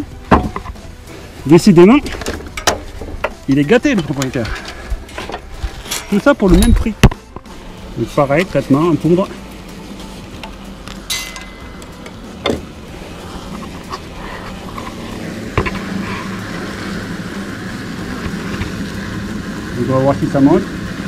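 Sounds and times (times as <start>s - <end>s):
powder duster hissing and humming: 0.0s - 21.0s.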